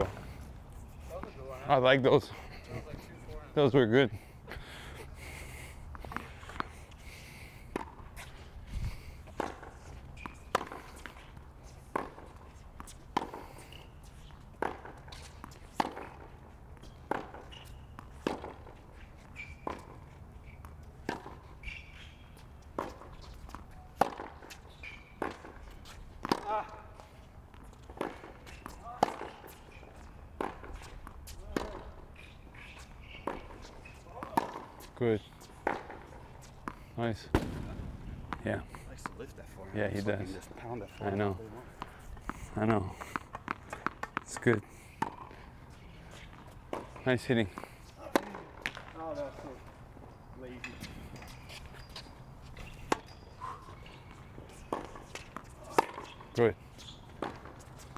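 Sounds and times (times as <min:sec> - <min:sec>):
rackets striking tennis ball: 0:07.6 - 0:57.9
tennis ball bouncing: 0:07.7 - 0:08.3, 0:09.2 - 0:39.3, 0:39.9 - 0:49.6, 0:50.7 - 0:57.9.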